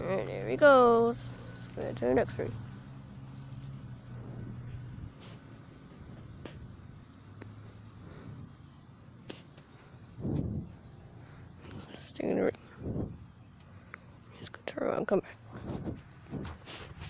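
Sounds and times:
distant vehicle engine hum: 0:00.0 - 0:17.0.

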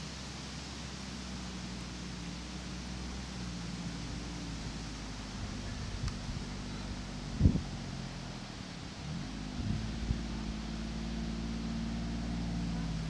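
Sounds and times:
utility vehicle engine running: 0:00.0 - 0:13.0.

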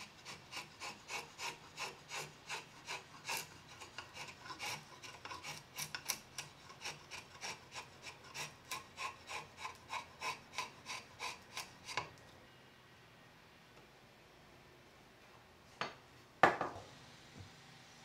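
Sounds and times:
blade shaving wood: 0:00.0 - 0:12.2.

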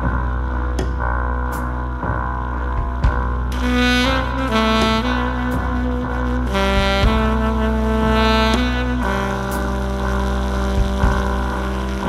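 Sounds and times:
saxophone long low note: 0:03.4 - 0:12.0.

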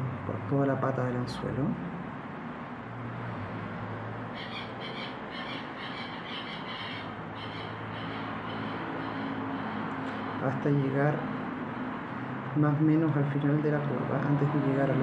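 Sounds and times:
bird squawking: 0:04.3 - 0:10.6.

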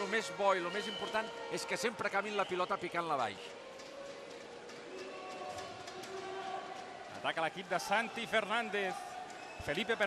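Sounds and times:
echoing background noise: 0:00.0 - 0:10.0.

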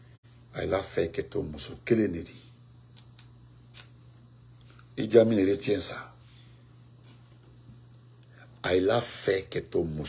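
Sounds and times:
steady low hum: 0:00.0 - 0:10.0
soft clicks: 0:02.9 - 0:04.0.

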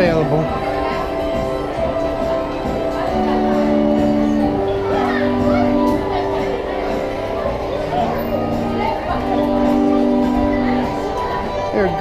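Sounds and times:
carousel organ music: 0:00.0 - 0:12.0
children chattering: 0:00.0 - 0:12.0.

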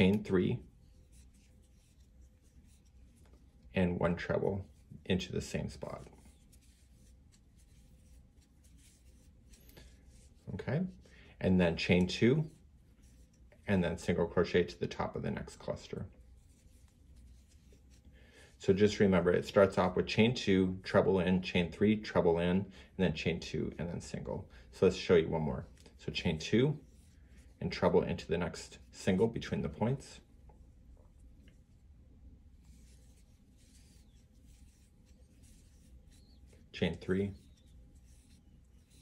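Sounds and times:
crochet hook scratching yarn: 0:00.0 - 0:22.2, 0:23.8 - 0:39.0
low room hum: 0:00.0 - 0:39.0.

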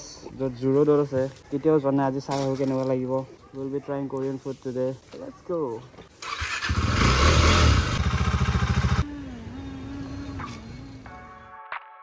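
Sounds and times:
motorcycle engine revving: 0:06.2 - 0:10.9.

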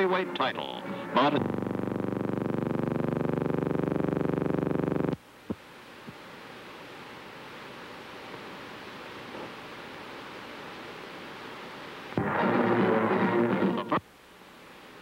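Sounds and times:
buzzy synthesizer tone: 0:01.0 - 0:05.2, 0:12.2 - 0:14.0
faint hiss: 0:05.1 - 0:15.0.

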